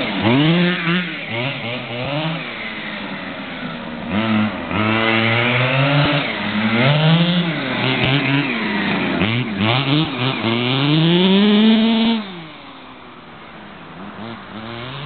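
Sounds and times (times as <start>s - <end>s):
rc car engine revving: 0.0s - 15.0s.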